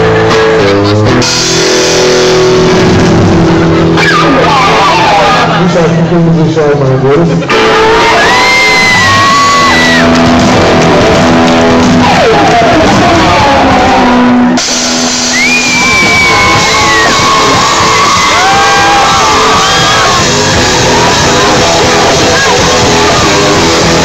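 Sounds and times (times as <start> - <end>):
rock band playing live: 0.0 - 24.0.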